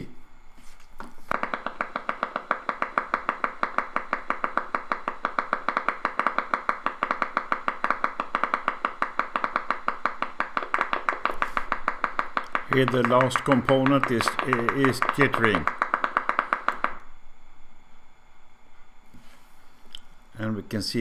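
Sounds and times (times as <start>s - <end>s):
rapid train of sharp pops: 1.3s - 17.1s.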